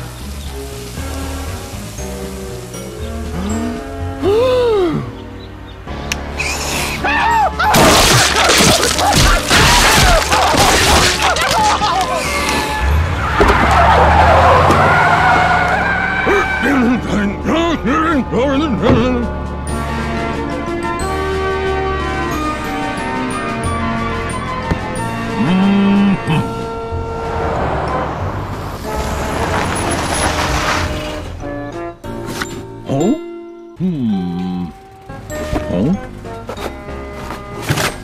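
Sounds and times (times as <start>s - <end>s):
road noise: 0.0s - 32.8s, 33.8s - 38.0s
tire screech: 6.3s - 7.8s, 8.9s - 17.2s, 23.8s - 31.5s
truck engine rumble: 10.1s - 32.8s, 33.8s - 38.0s.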